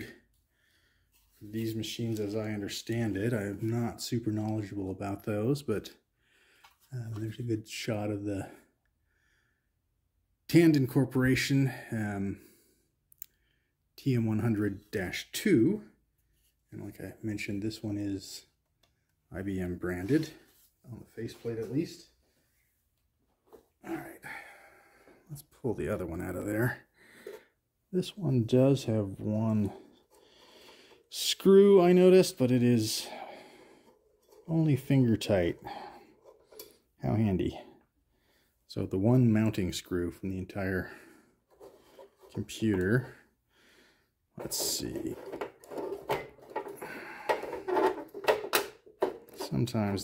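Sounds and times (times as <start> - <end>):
man speaking: 0.0 - 0.2, 1.4 - 6.0, 6.9 - 8.6, 10.5 - 12.4, 14.0 - 16.0, 16.7 - 18.5, 19.3 - 22.2, 23.8 - 24.5, 25.2 - 26.9, 27.9 - 29.9, 31.1 - 33.4, 34.4 - 36.0, 37.0 - 37.7, 38.7 - 41.0, 42.3 - 43.2, 44.4 - 45.3, 49.4 - 50.0.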